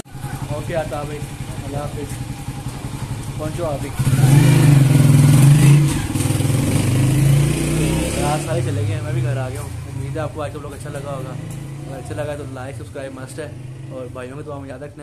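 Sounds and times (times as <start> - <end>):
vehicle engine pulsing hum: 0.0 - 15.0.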